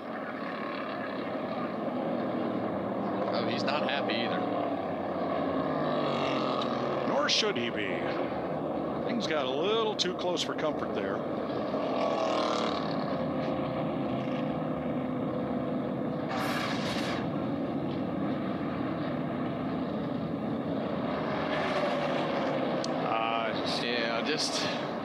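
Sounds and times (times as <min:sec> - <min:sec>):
race car engines passing: 0:00.0 - 0:25.0
brief whoosh: 0:16.3 - 0:17.3.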